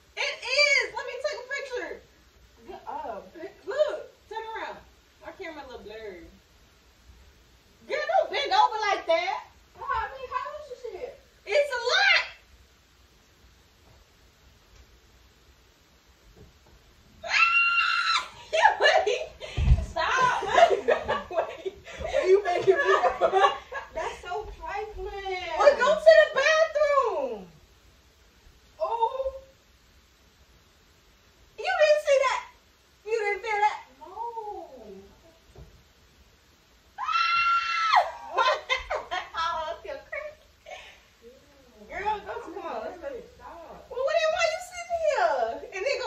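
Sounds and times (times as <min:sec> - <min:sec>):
person shrieking: 0:17.2 - 0:18.8, 0:37.0 - 0:38.4
person crying out: 0:17.2 - 0:19.1, 0:37.0 - 0:38.5
woman screaming: 0:17.2 - 0:19.3, 0:37.0 - 0:38.8.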